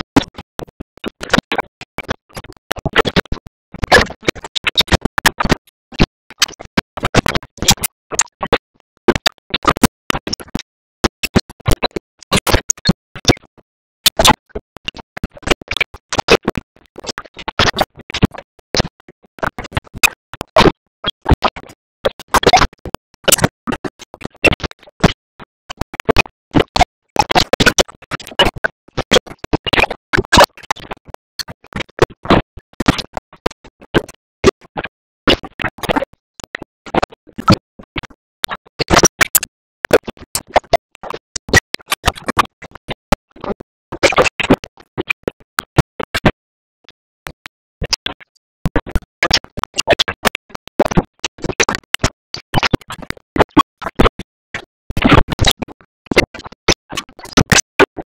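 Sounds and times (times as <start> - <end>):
garbled stuttering audio: 15.2 - 25.2, 38.4 - 46.2, 47.2 - 54.0, 57.4 - 57.7.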